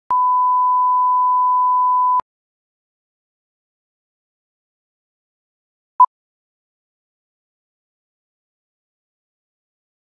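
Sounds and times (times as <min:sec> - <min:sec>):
steady test tone beep: 0:00.1 - 0:02.2.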